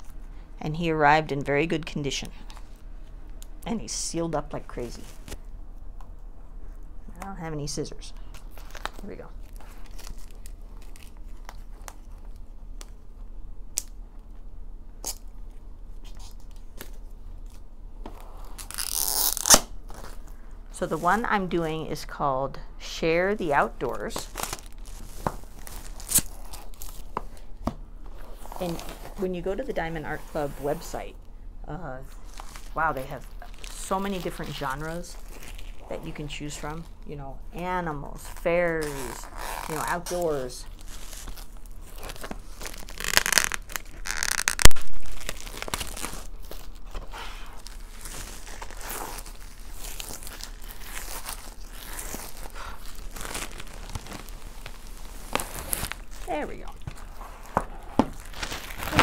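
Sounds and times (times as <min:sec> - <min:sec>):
plastic crinkling: 0:08.2 - 0:13.0, 0:23.6 - 0:27.6, 0:32.2 - 0:35.9, 0:38.2 - 0:59.0
plastic wrapping tearing: 0:08.2 - 0:13.0, 0:18.3 - 0:20.4, 0:23.9 - 0:27.5, 0:32.2 - 0:35.9, 0:38.2 - 0:59.0.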